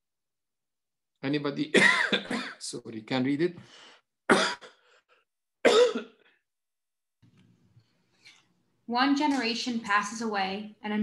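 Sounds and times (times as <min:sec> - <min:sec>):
man coughing: 0:01.7 - 0:02.8, 0:04.3 - 0:05.0, 0:05.6 - 0:06.3.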